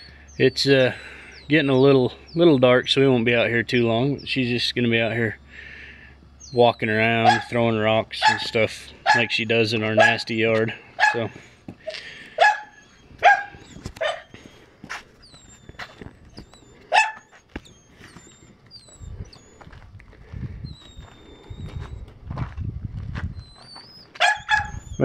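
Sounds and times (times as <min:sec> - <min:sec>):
dog barking: 0:07.2 - 0:07.6, 0:08.2 - 0:09.4, 0:10.0 - 0:10.3, 0:11.0 - 0:11.4, 0:12.4 - 0:14.3, 0:16.9 - 0:17.3, 0:24.2 - 0:24.8.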